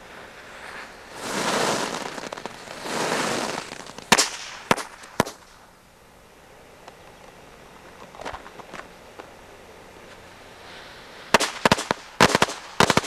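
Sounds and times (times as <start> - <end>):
firecrackers hissing: 0.0 - 5.9, 8.5 - 13.0
firecracker bangs: 1.1 - 5.6, 11.3 - 13.0.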